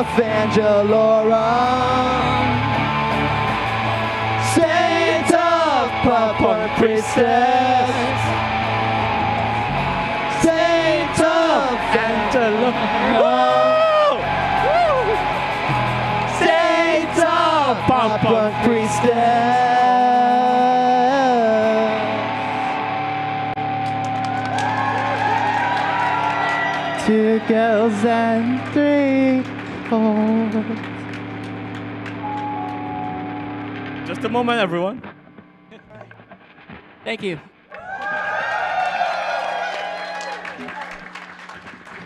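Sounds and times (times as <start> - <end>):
sung and shouted vocals: 0.0 - 22.8, 25.3 - 31.0
live rock band playing: 0.0 - 28.8, 29.4 - 37.1.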